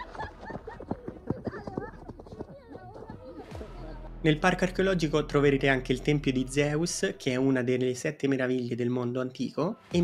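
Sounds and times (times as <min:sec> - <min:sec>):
running footsteps on earth: 0:00.0 - 0:03.6
people's voices: 0:00.0 - 0:07.5.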